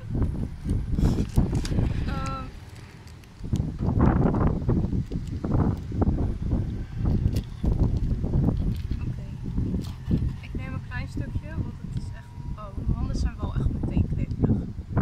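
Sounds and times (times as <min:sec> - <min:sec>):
wind buffeting microphone: 0:00.0 - 0:15.0
snack package rustling: 0:02.6 - 0:03.7.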